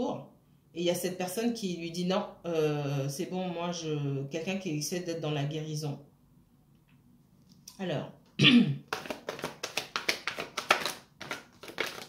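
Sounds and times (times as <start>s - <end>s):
cards being shuffled by hand: 8.8s - 12.0s.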